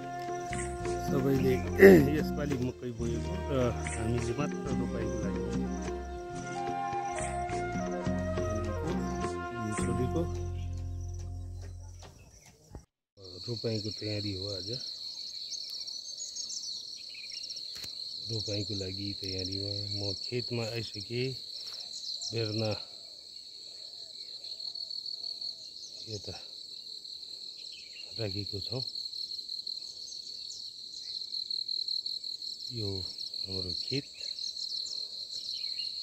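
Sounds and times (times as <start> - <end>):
bird chirps: 0.0 - 26.9, 27.6 - 28.9, 32.8 - 36.0
person speaking: 0.9 - 5.7, 9.5 - 10.6
insects trilling: 13.2 - 36.0.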